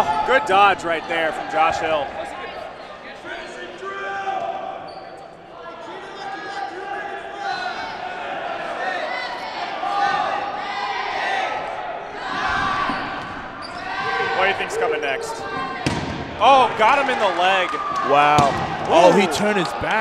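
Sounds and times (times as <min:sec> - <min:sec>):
players shouting: 0:07.6 - 0:20.0.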